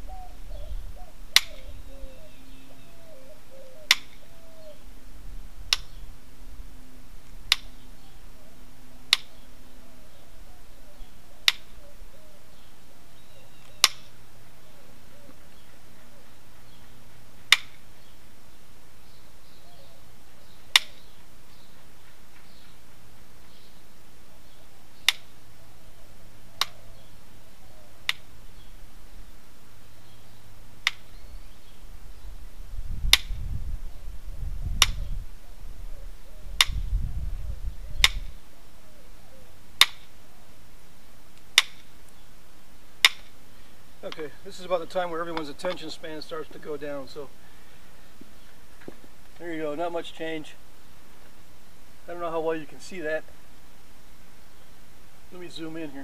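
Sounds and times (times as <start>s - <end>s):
stone knapping clicks: 3.9s - 4.2s, 7.5s - 7.7s, 11.4s - 11.7s, 13.6s - 14.1s, 17.5s - 17.8s, 20.7s - 21.0s, 25.0s - 25.3s, 41.4s - 41.9s, 43.0s - 43.3s.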